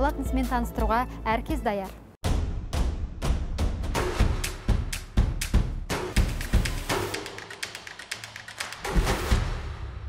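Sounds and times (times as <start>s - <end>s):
heavy drum hit: 2.2s - 6.9s
rapid ticking percussion: 4.2s - 9.4s.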